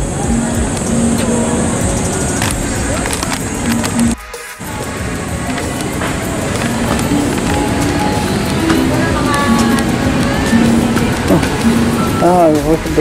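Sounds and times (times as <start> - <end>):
low rumble of traffic: 0.0 - 13.0.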